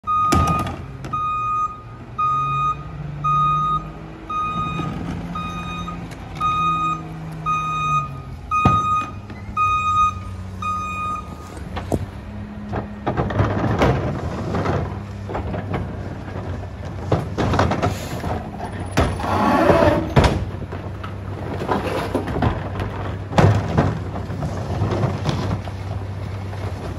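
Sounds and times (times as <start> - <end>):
reverse alarm beeping: 0.0 - 11.4
garbage truck engine: 0.0 - 26.9
clatter: 11.8 - 26.9.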